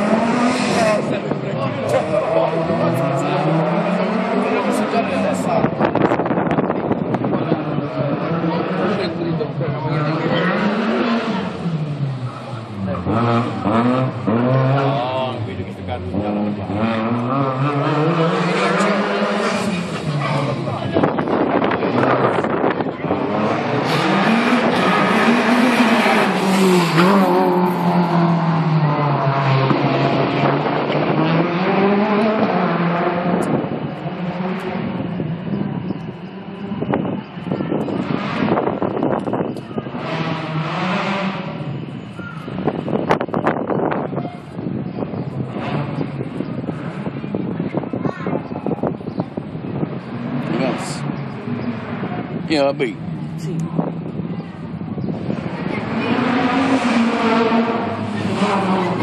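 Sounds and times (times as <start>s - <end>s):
car engine revving: 0.0s - 47.9s, 48.6s - 59.0s.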